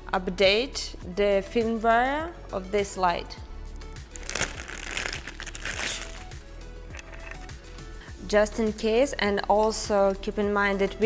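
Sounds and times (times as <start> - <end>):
background music with steady beat: 0.0 - 11.0
plastic packaging crinkling: 4.1 - 7.6.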